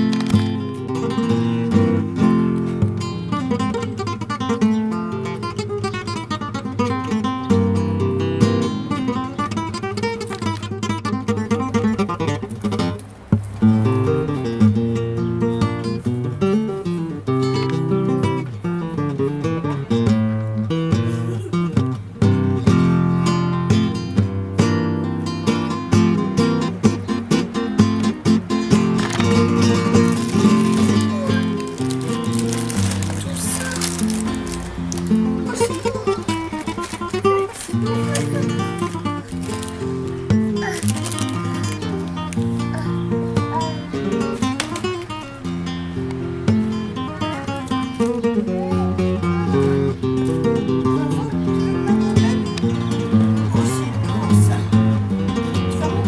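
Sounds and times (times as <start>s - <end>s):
acoustic guitar strummed and plucked: 0.0s - 56.0s.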